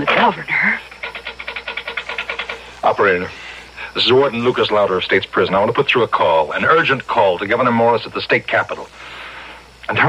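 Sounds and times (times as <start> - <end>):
rotary dial clicking: 0.9 - 2.6.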